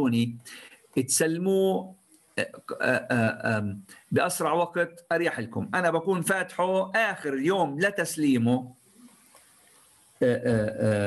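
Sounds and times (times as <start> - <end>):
person talking: 0.0 - 1.8, 2.4 - 8.7, 10.2 - 11.0.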